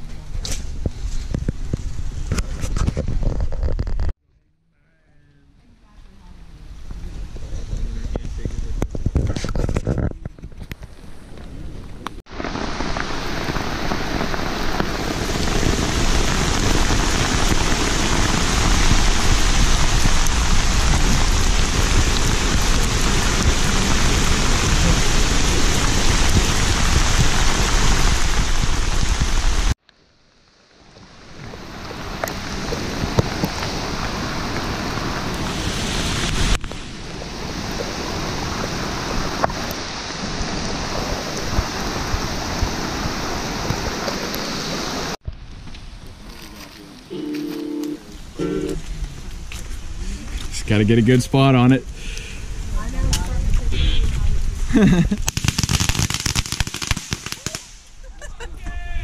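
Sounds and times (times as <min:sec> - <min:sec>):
heavy rain falling: 0:12.2 - 0:29.8, 0:30.4 - 0:45.2, 0:46.1 - 0:55.4.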